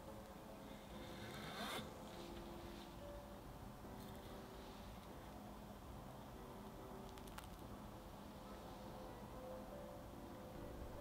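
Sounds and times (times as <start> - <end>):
knife scraping out of cheesecake: 1.0 - 2.0.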